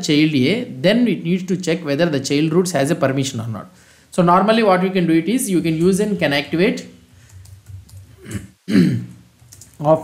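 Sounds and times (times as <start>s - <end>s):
man speaking: 0.0s - 7.0s
man clearing his throat: 8.2s - 9.2s.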